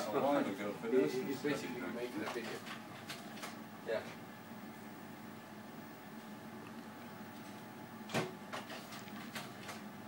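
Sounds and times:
projector fan hum: 0.0 - 10.0
projector clunk: 8.0 - 9.8.

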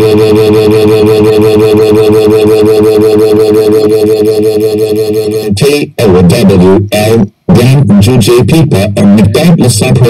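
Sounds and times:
text-to-speech voice droning: 0.0 - 10.0.

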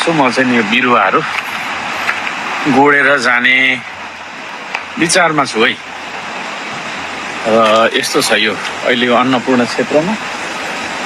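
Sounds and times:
man speaking: 0.0 - 1.4, 2.6 - 4.0, 4.9 - 5.9, 7.4 - 10.2
rushing outdoor background noise: 0.0 - 11.0.

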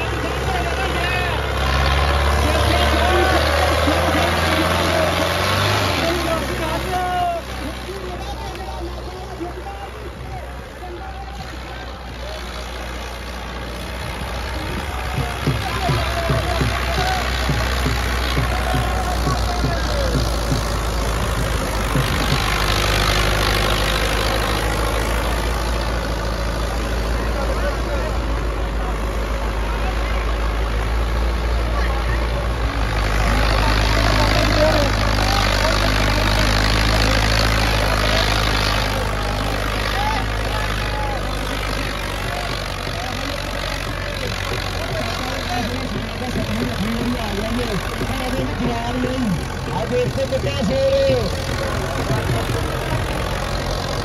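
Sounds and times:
crowd shouting: 0.0 - 26.0, 27.0 - 54.0
tractor engine running hard: 0.0 - 54.0.

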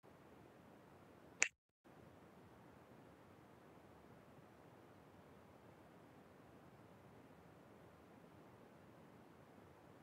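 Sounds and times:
faint steady hiss: 0.1 - 10.0.

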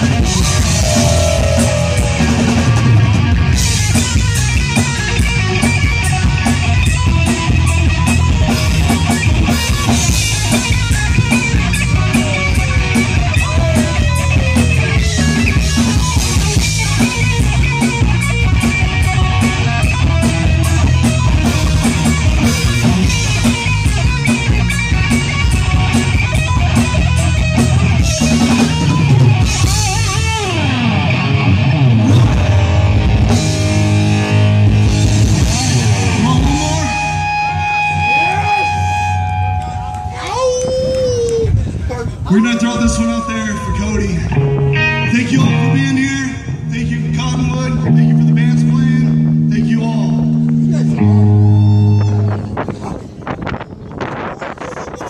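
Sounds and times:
drum kit: 0.0 - 39.7
bass guitar: 0.0 - 55.0
distorted electric guitars: 0.0 - 55.0.

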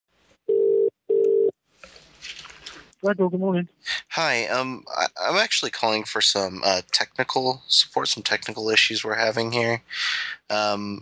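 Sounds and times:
telephone ringback tone: 0.5 - 1.5
faint line hiss: 3.9 - 11.0.

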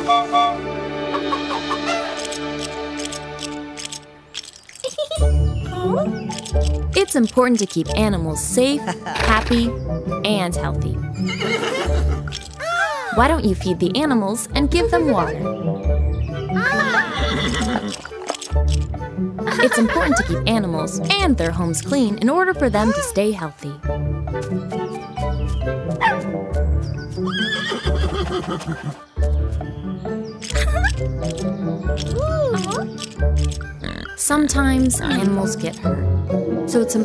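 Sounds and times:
background music: 0.0 - 37.0
horse whinnying: 11.2 - 13.2, 16.6 - 18.2, 27.3 - 29.1.

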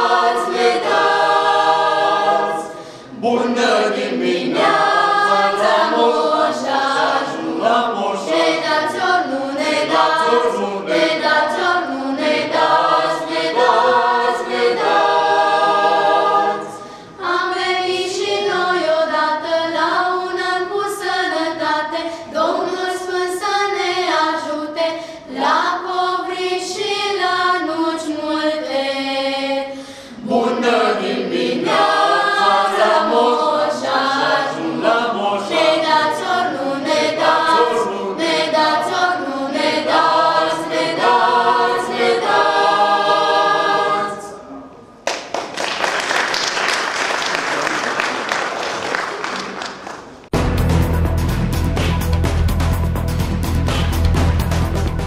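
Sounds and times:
male choir singing in harmony: 0.0 - 20.3, 25.4 - 44.6.

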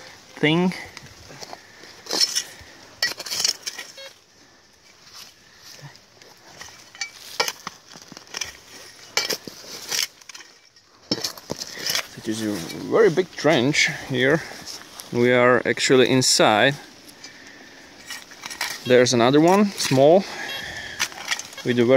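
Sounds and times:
spade digging into earth: 2.0 - 4.2, 18.0 - 21.9.

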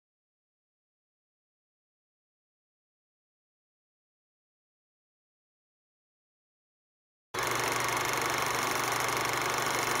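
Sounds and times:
film projector whirring: 7.4 - 10.0.

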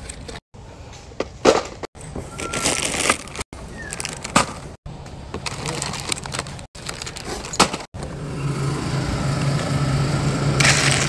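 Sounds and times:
plastic bag crinkling: 2.4 - 4.4, 5.4 - 7.6.

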